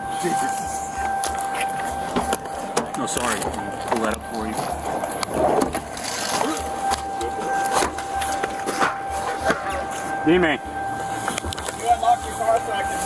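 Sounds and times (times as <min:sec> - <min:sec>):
faint steady high tone: 0:00.0 - 0:13.0
muffled indistinct voices: 0:00.0 - 0:13.0
pulsing low rumble: 0:00.0 - 0:13.0.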